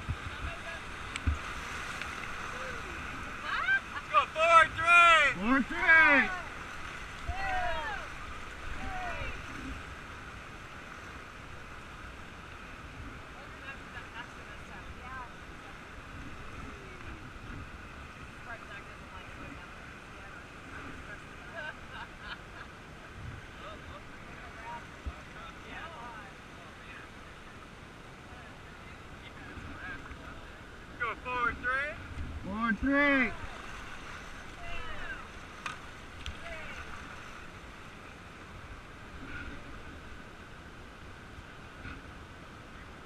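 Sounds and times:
wind rumble on microphone: 0.0 - 1.5
whitewater river rushing: 0.0 - 43.0.

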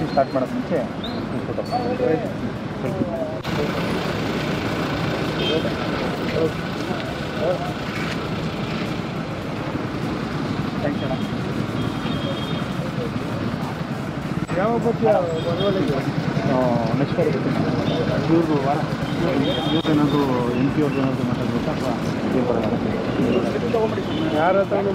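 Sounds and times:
low rumble of traffic: 0.0 - 24.9.

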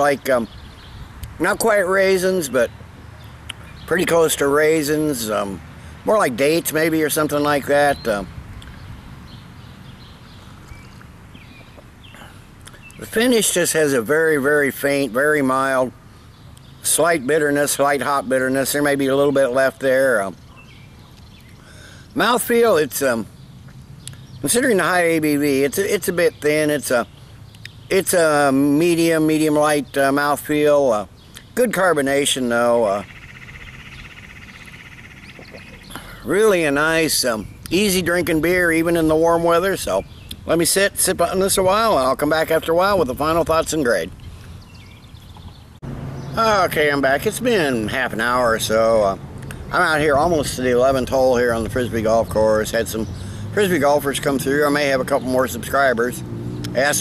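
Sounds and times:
faint bird chirps: 32.8 - 37.9.

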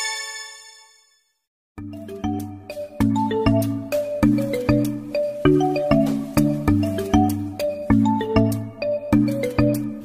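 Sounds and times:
music with mallet notes: 1.8 - 10.0.

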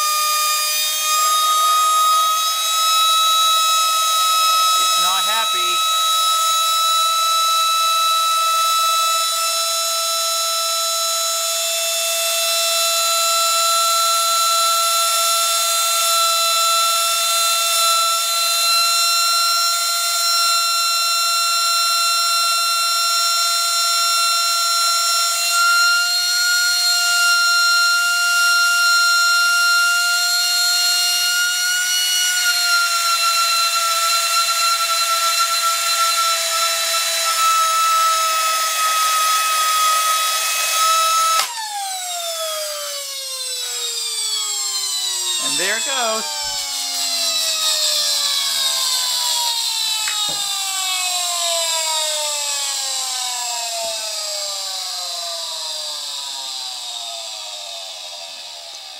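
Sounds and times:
vacuum motor high-pitched whine: 0.0 - 58.9.

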